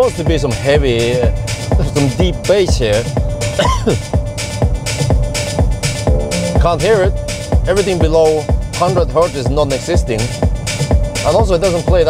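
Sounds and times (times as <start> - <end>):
electronic dance music on car stereo: 0.0 - 12.0.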